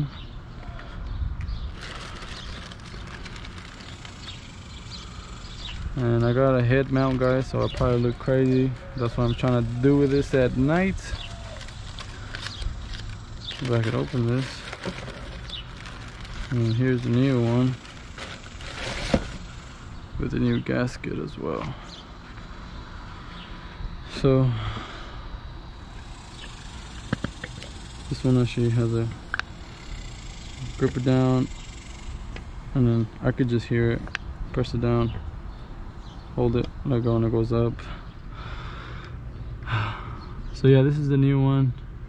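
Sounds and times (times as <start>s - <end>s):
voiced hum: 0.0s - 42.0s
rustling handling noise: 1.7s - 19.7s.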